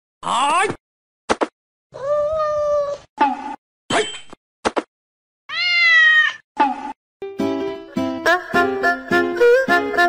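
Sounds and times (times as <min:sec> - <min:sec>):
cat meowing: 0:02.0 - 0:03.0, 0:05.5 - 0:06.4.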